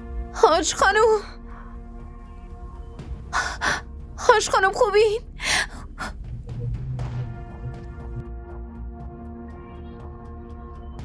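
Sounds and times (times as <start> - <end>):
low sombre background music: 0.0 - 11.0
woman gasping for breath: 3.3 - 3.9, 5.4 - 6.2.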